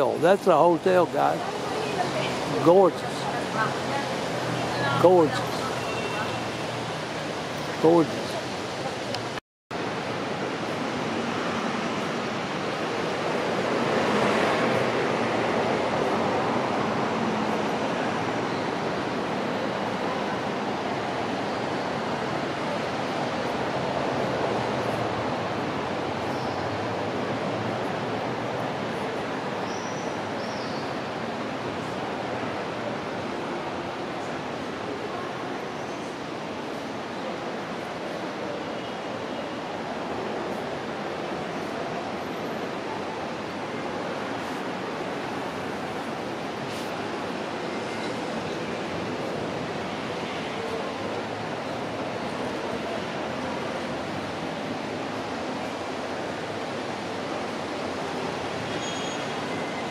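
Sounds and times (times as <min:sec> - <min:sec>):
outdoor city noise: 0:00.0 - 0:59.9.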